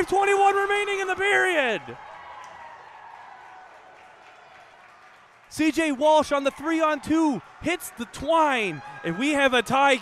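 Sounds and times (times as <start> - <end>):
faint crowd cheering and applause: 0.0 - 10.0.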